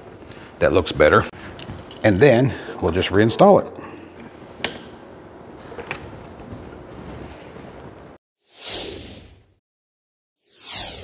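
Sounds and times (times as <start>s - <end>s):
whoosh transition effect: 8.4s - 9.4s, 10.4s - 11.0s.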